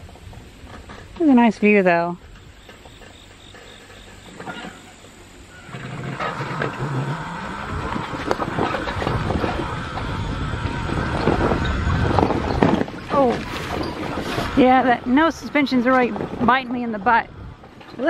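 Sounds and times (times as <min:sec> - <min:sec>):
electric bicycle motor hum: 0:02.3 - 0:18.0
bicycle frame rattling over bumps: 0:08.0 - 0:14.6.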